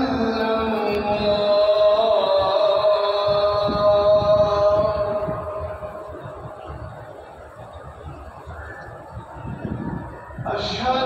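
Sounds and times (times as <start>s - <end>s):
call to prayer over loudspeakers: 0.0s - 7.8s, 8.4s - 11.0s
low background noise: 0.0s - 11.0s.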